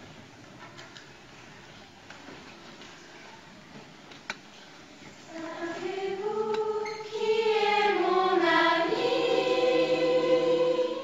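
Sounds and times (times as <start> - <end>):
youth choir singing unaccompanied: 5.2 - 11.0.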